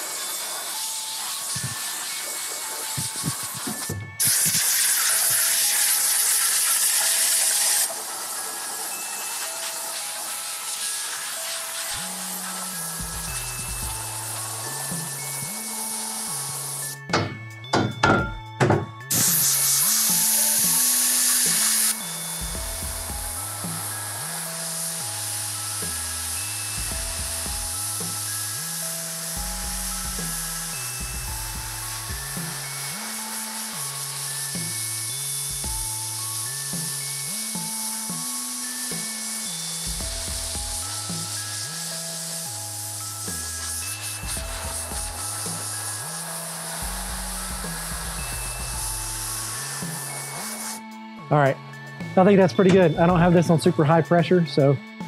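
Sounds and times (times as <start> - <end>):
compressed air hissing: 0.0 - 18.0, 19.0 - 51.0
background music with bass line: 12.0 - 33.0, 33.8 - 39.2, 39.8 - 45.8, 46.6 - 55.0.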